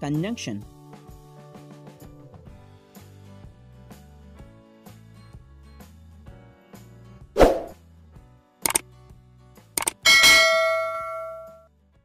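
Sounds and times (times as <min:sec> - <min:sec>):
mouse click: 0:09.8 - 0:10.0
bell-like notification ding: 0:10.0 - 0:11.6.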